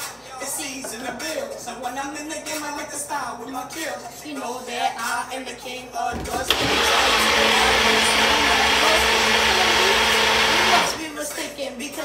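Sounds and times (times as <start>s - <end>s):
blender running: 6.3s - 11.1s.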